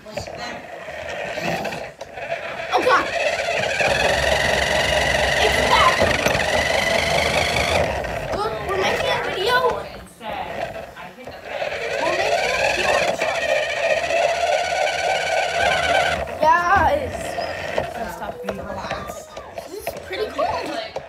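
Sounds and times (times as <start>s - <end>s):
toy truck electric motor whining: 0.0s - 21.0s.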